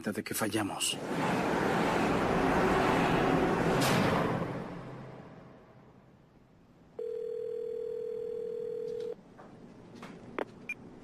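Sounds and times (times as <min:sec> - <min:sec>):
telephone tone: 0:07.0 - 0:09.2.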